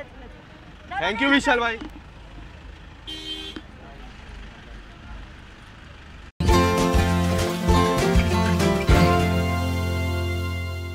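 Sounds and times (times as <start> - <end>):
low rumble of car engines: 0.0 - 6.4
car horn toot: 3.0 - 3.7.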